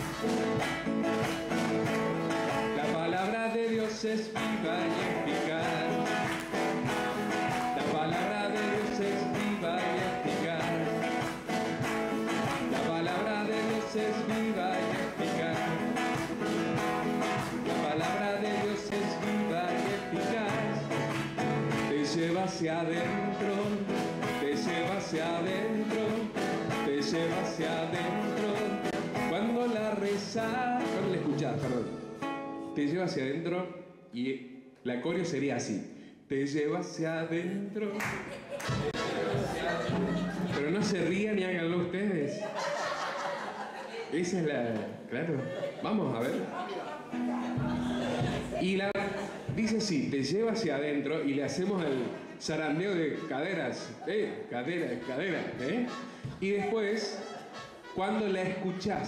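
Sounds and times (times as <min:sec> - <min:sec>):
acoustic guitar strumming: 0:00.0 - 0:32.8, 0:38.8 - 0:41.4, 0:46.2 - 0:59.0
man singing: 0:01.5 - 0:32.1, 0:32.8 - 0:38.1, 0:38.8 - 0:42.4, 0:48.0 - 0:59.0.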